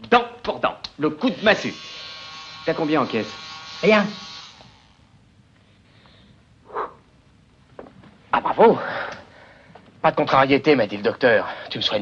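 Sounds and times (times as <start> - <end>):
electric buzz: 1.1 - 5.4.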